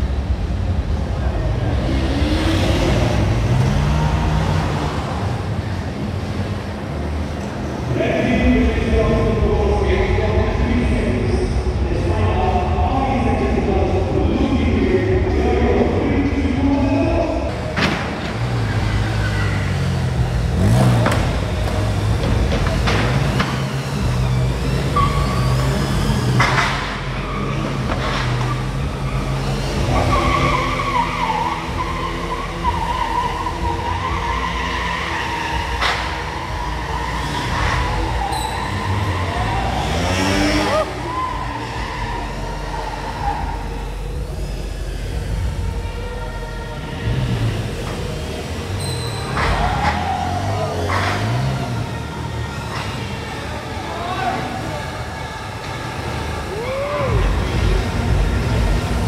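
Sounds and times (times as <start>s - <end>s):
motorcycles revving: 0.0s - 59.0s
tyres squealing: 16.7s - 44.4s, 45.7s - 59.0s.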